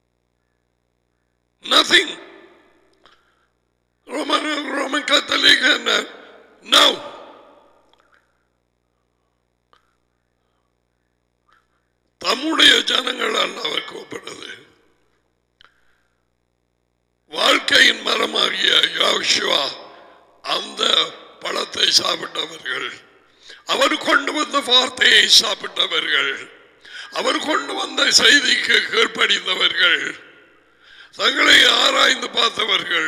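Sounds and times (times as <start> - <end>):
man talking into microphone: 1.6 - 2.4, 4.1 - 7.4, 12.2 - 14.6, 17.3 - 30.4, 31.0 - 33.0.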